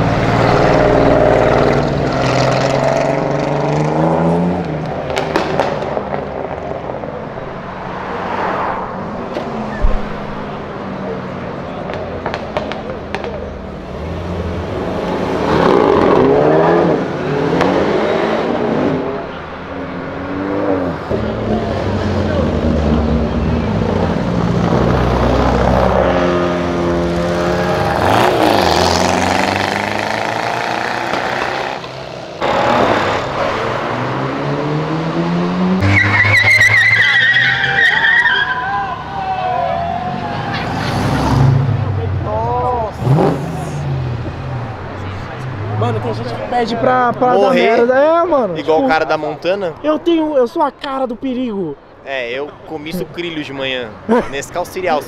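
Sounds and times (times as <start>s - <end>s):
crowd voices: 0.0s - 24.8s, 36.2s - 55.0s
cars revving and accelerating: 0.0s - 50.2s, 52.5s - 55.0s
high wavering tyre squeal: 35.8s - 41.6s.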